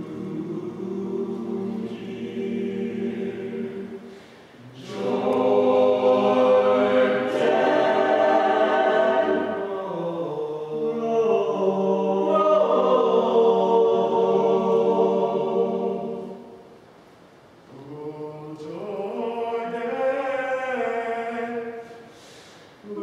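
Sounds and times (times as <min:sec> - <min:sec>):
male a cappella group singing: 0:00.0 - 0:16.5, 0:17.7 - 0:23.0.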